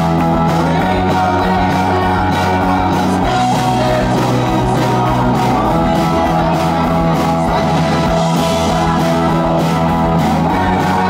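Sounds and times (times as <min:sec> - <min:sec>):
bass guitar: 0:00.0 - 0:11.0
drum kit: 0:00.0 - 0:11.0
electric guitars: 0:00.0 - 0:11.0.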